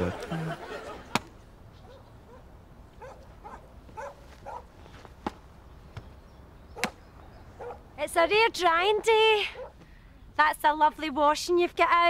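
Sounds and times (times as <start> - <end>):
paddles hitting tennis ball: 1.1 - 1.4, 4.9 - 6.1.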